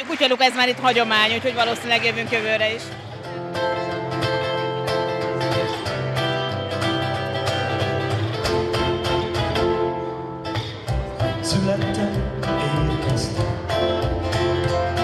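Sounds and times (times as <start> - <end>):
acoustic guitar: 0.2 - 15.0.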